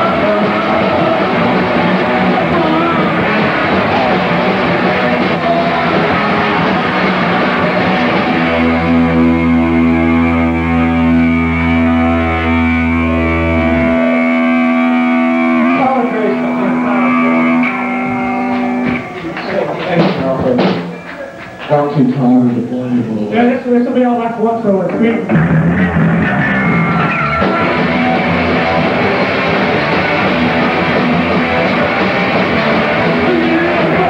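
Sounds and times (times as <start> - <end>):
sustained bass note: 0.0 - 19.0, 25.3 - 33.2
ringing guitar chord: 0.0 - 19.8
punk band playing live: 0.0 - 21.9, 25.2 - 34.0.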